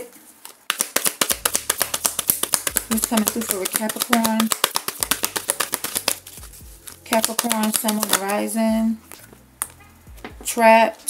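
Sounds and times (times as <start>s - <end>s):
cards being shuffled: 0.3s - 10.4s.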